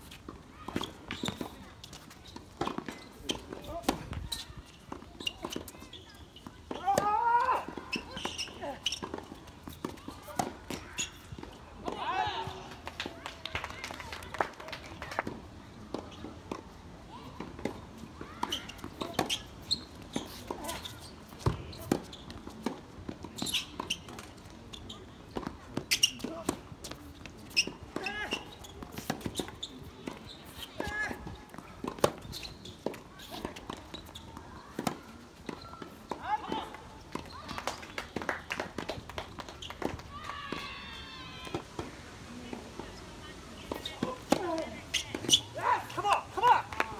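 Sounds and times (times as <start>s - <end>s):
tennis ball bouncing: 6.4s - 13.2s, 25.3s - 40.6s, 43.6s - 46.9s.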